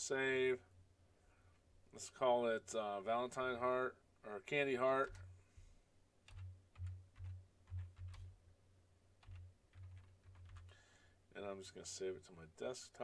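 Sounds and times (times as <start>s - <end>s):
typing on computer keyboard: 6.3s - 8.4s, 9.2s - 10.8s.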